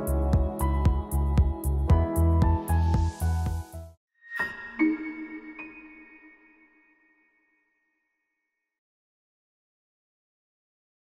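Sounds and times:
electronic chime chord: 4.3 - 7.6.

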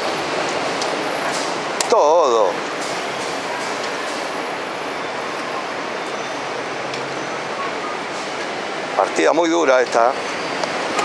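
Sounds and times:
street traffic hiss: 0.0 - 11.0.

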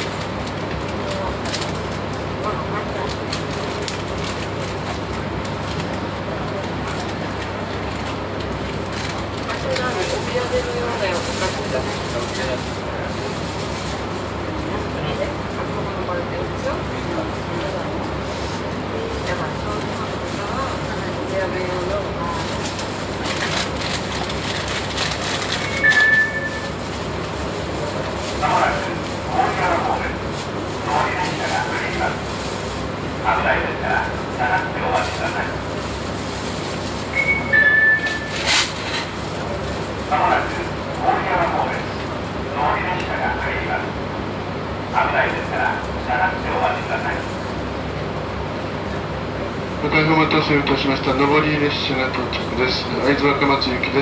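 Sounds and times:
electric train hum: 0.0 - 54.0
voices talking: 25.1 - 32.3, 32.9 - 35.8, 39.3 - 47.2, 49.8 - 54.0.

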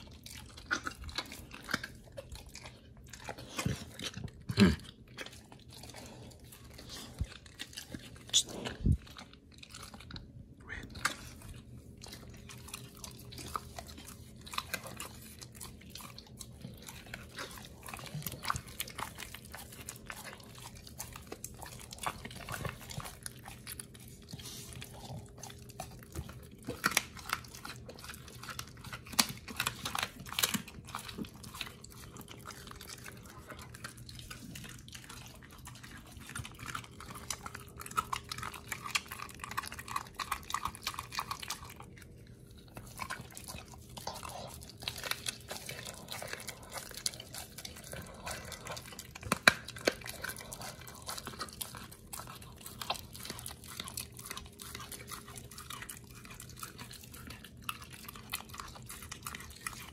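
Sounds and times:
dog chewing raw meat: 0.0 - 59.9.

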